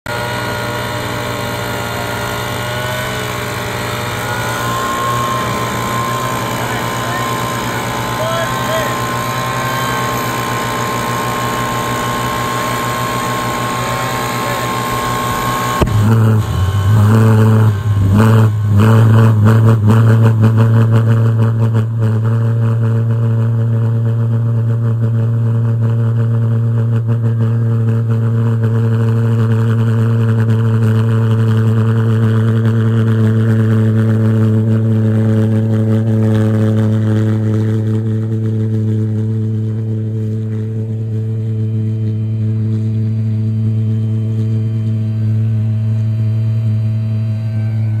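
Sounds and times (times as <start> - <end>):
pulse jet engines droning: 0.1 - 20.4, 33.5 - 48.0.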